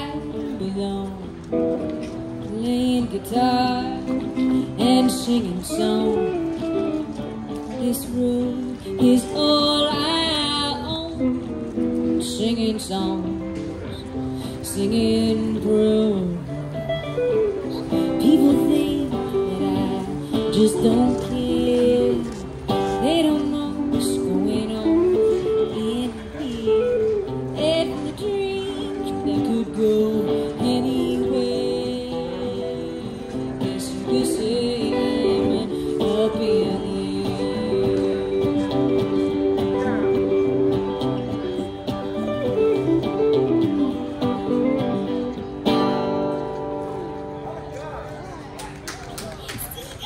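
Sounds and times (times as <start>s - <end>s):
woman singing: 0.0s - 1.8s, 2.4s - 11.4s, 12.1s - 13.5s, 14.5s - 16.7s, 17.7s - 39.8s
strummed acoustic guitar: 0.0s - 47.7s
electric guitar accompaniment: 0.0s - 50.0s.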